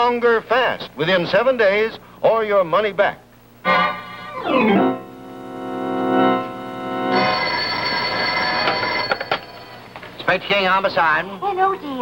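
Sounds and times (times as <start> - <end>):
telephone bell ringing: 7.0 - 10.2.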